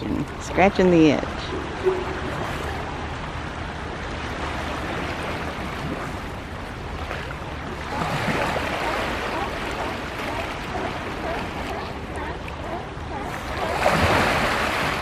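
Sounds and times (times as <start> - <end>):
water splashing against rocks: 3.7 - 12.6, 13.2 - 15.0.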